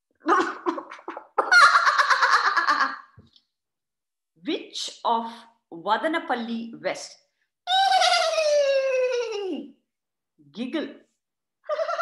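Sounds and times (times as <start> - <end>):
woman laughing loudly: 0.3 - 3.1.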